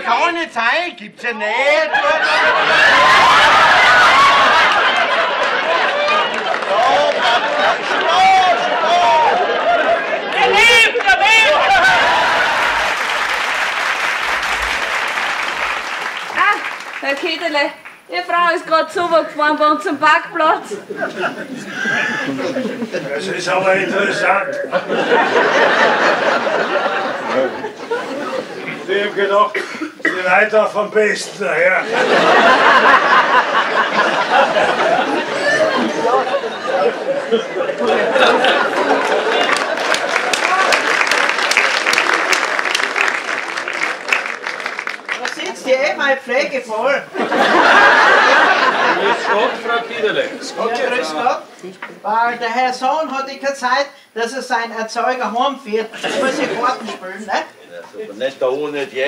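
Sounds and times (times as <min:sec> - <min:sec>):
murmur of voices chattering: 0:18.6 - 0:30.2, 0:34.0 - 0:39.7.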